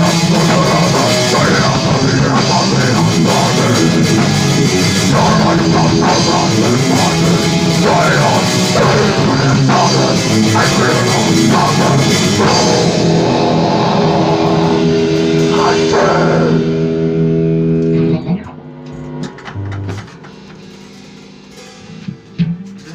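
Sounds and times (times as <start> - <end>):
distorted electric guitar: 0.0 - 22.9
drum kit: 0.0 - 22.9.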